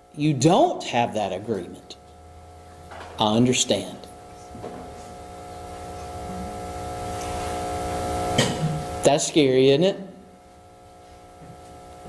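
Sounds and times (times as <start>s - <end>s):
hum of held tones: 0.0s - 12.0s.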